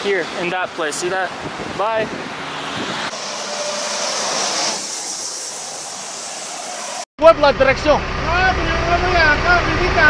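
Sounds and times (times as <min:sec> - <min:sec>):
highway traffic rushing: 0:00.0 - 0:10.0
passing vehicle hiss: 0:00.8 - 0:07.1.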